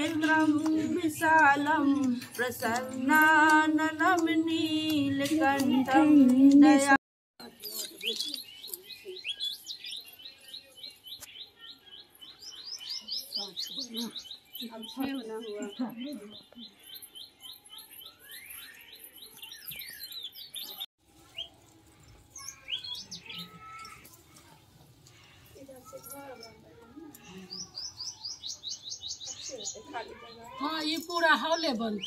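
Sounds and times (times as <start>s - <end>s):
faint murmuring voices: 21.3s - 31.4s.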